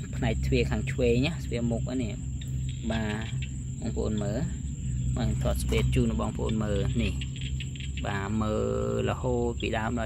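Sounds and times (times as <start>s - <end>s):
high-pitched insect drone: 0.0s - 10.0s
low steady hum: 0.0s - 10.0s.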